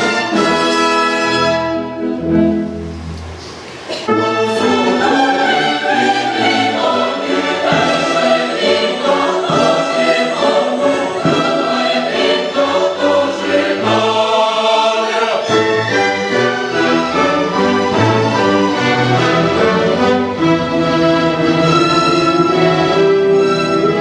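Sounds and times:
symphony orchestra: 0.0s - 24.0s
mixed choir singing: 4.1s - 24.0s.

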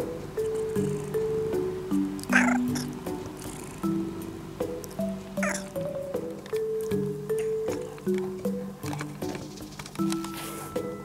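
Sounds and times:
light background music: 0.0s - 11.0s
cat meowing: 2.2s - 3.6s, 5.4s - 5.8s.

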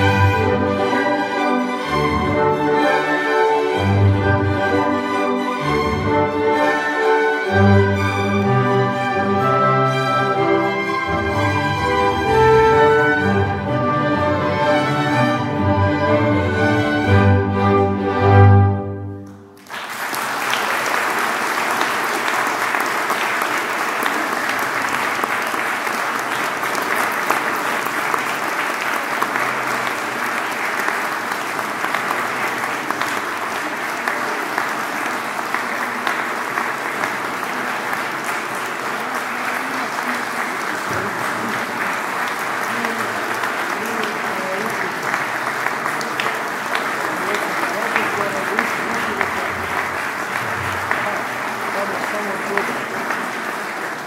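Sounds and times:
audience applauding: 0.0s - 17.3s, 19.1s - 54.0s.

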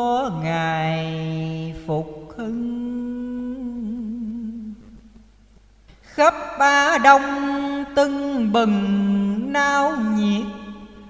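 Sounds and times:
person chanting verse: 0.0s - 4.8s, 6.1s - 11.0s.

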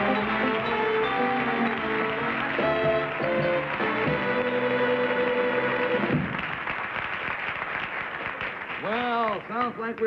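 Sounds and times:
band playing music: 0.0s - 6.4s
audience applauding: 0.0s - 10.0s.

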